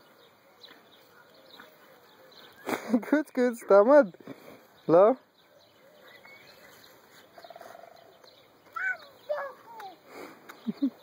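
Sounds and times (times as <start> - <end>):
faint bird chirps: 4.7 - 11.0.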